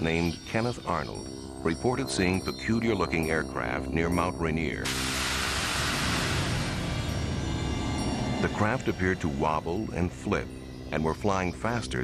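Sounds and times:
background music with low tones: 0:00.0 - 0:12.0
steady rushing noise: 0:04.9 - 0:08.8.

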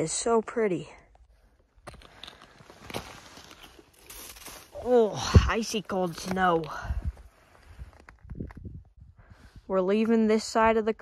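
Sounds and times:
snow crunching and scraping: 0:02.1 - 0:08.1.

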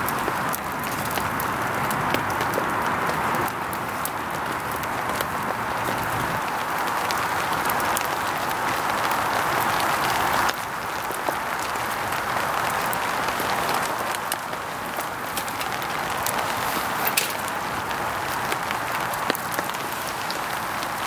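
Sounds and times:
wood fire crackling and popping: 0:00.0 - 0:21.0.

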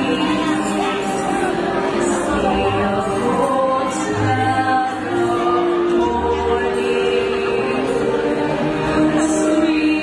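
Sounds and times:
amplified musical accompaniment: 0:00.0 - 0:10.0
women singing through microphones: 0:00.0 - 0:10.0.

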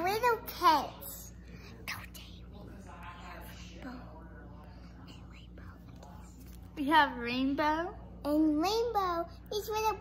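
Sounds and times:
child whispering: 0:01.6 - 0:02.5, 0:05.0 - 0:06.3.

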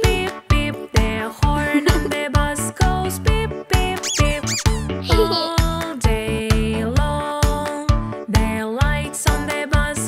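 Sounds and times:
children's music with steady beat: 0:00.0 - 0:10.0
squeaky cartoon sound effects: 0:04.0 - 0:05.6.

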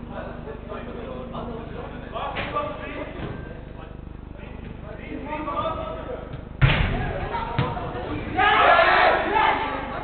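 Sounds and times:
football kicked with thud: 0:06.3 - 0:07.8
players shouting: 0:06.9 - 0:10.0.

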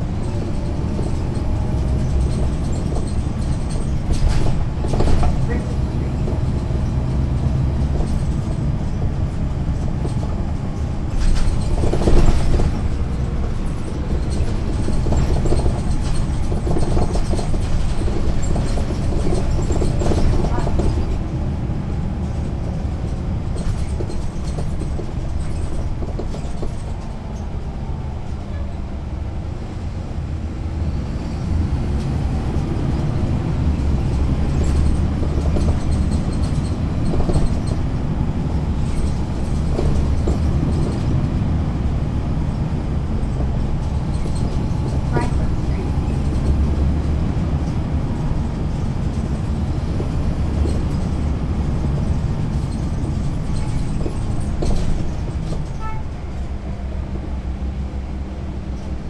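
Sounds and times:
bus diesel engine rumbling: 0:00.0 - 0:59.0.

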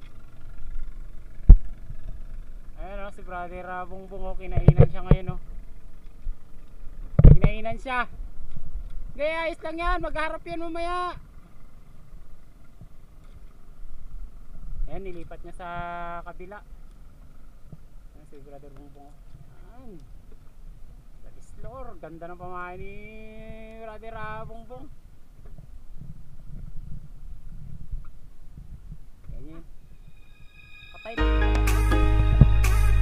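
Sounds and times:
wind rumble on microphone: 0:04.2 - 0:10.3, 0:22.4 - 0:30.2, 0:32.2 - 0:33.0.

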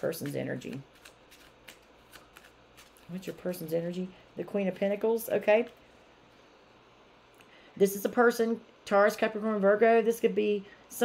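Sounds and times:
cards being shuffled: 0:00.0 - 0:03.7.

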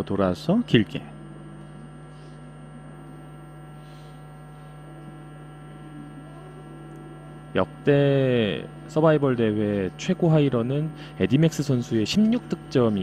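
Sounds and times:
electrical mains hum: 0:00.0 - 0:13.0.

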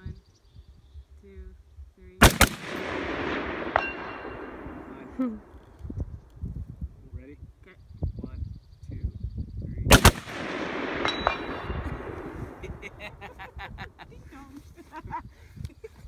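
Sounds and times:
rifle shots with echo: 0:02.2 - 0:05.6, 0:09.9 - 0:12.8.

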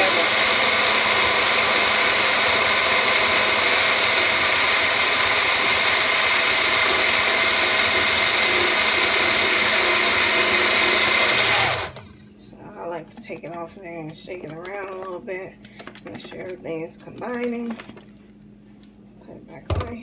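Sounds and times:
blender whirring: 0:00.0 - 0:12.2.

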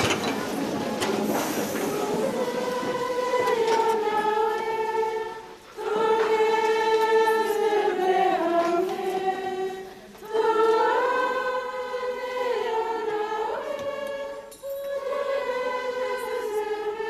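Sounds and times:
choir singing in unison: 0:00.0 - 0:17.0.

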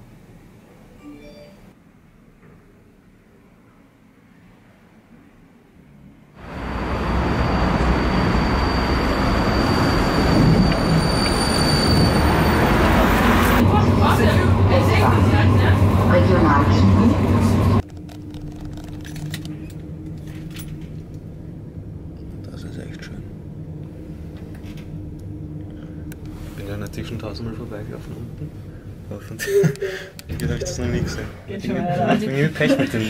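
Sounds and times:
low hum: 0:12.4 - 0:29.1
voices: 0:13.6 - 0:17.8.

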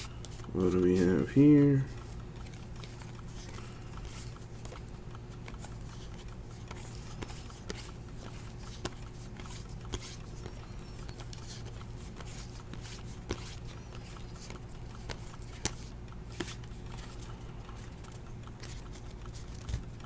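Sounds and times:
cards sliding: 0:00.0 - 0:19.9
steady low hum: 0:00.0 - 0:20.0
cards snapping clicks: 0:02.2 - 0:17.2.

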